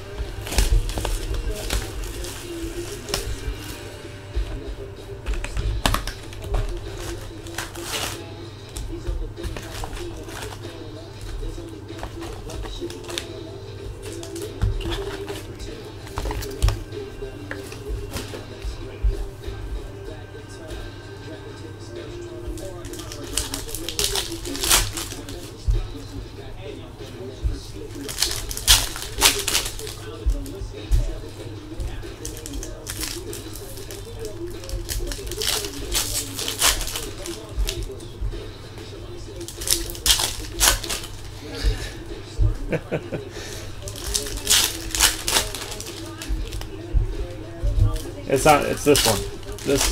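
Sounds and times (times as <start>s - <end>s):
cardboard and foil packs crinkling: 0.0s - 20.7s, 22.1s - 49.9s
background music: 0.0s - 49.9s.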